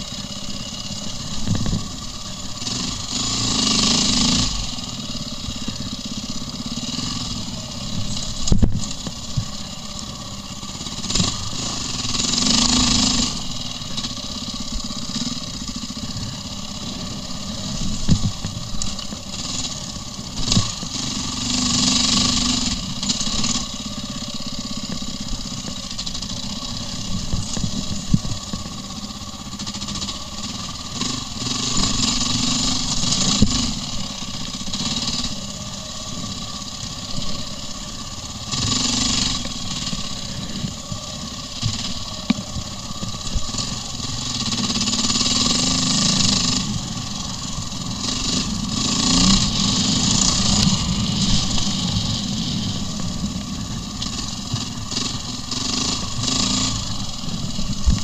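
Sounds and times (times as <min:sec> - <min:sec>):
motorcycle engine running: 0:00.0 - 0:58.0
motorcycle throttle bursts: 0:00.0 - 0:58.0.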